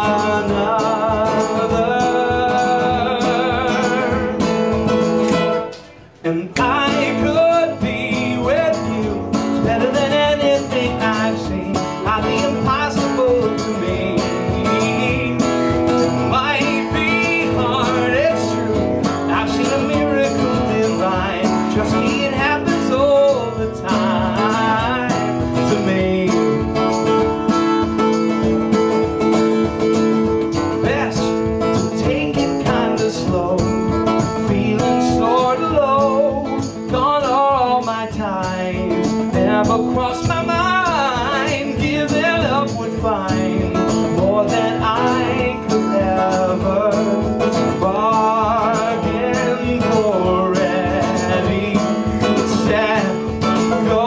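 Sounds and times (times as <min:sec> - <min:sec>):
person singing: 0:00.0 - 0:27.0, 0:30.8 - 0:54.0
live guitar song: 0:00.0 - 0:54.0.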